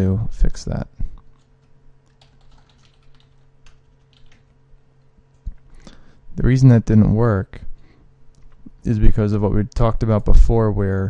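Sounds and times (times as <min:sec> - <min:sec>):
steady low hum: 0:00.0 - 0:11.0
keyboard keystrokes: 0:02.1 - 0:04.5.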